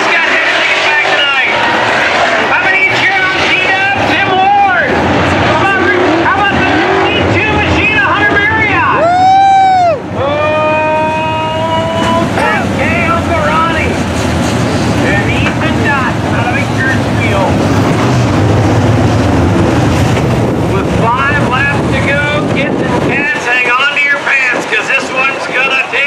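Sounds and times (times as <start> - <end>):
race car engines roaring: 0.0 - 26.0.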